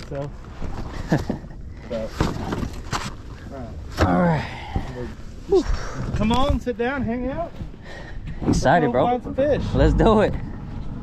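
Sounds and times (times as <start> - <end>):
steady low rumble: 3.2 - 11.0.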